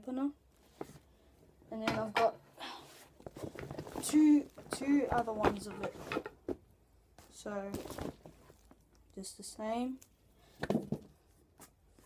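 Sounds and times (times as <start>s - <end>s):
knocks and rustles of rackets and bag: 3.0s - 8.8s, 10.5s - 12.0s.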